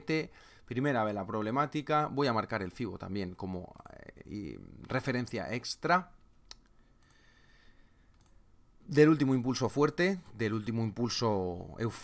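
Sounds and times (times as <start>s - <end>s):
faint mouse click: 6.4s - 7.2s, 8.1s - 8.4s.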